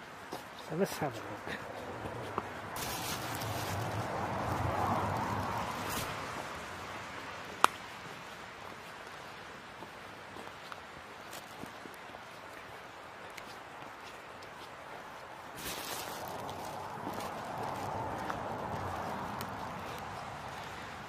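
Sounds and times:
footsteps squelching on wet leaves: 0:00.2 - 0:21.0.

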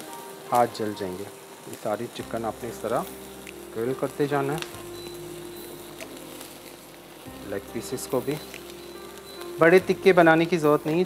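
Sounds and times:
chicken sizzling on grill: 0:00.0 - 0:11.0.

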